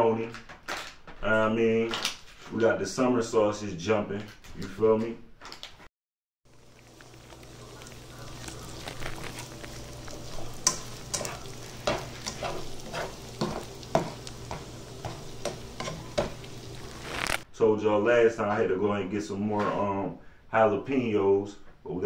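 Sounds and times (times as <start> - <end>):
meat sizzling in a pan: 6.5 - 17.5
spatula scraping a pan: 6.6 - 17.4.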